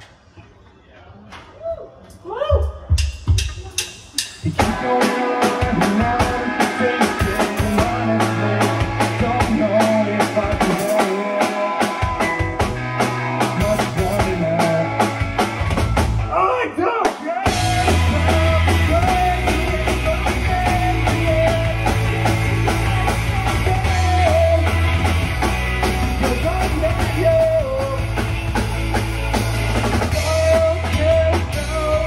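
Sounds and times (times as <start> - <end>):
drum kit beat: 2.6 - 16.4, 17.0 - 32.0
live rock band playing: 3.2 - 32.0
person singing: 3.6 - 15.2, 16.3 - 28.2, 30.1 - 32.0.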